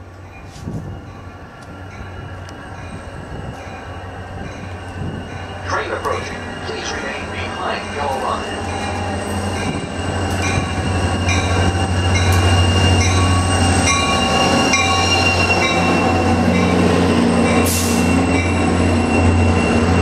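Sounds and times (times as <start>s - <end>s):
diesel locomotive engine: 0.0s - 20.0s
wheels and brakes squealing: 8.8s - 20.0s.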